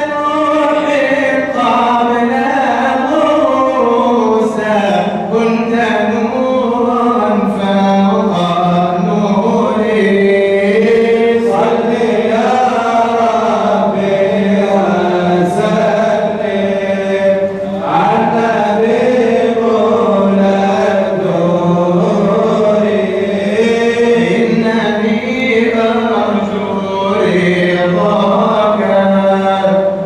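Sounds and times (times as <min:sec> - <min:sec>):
man chanting into a microphone: 0:00.0 - 0:30.0.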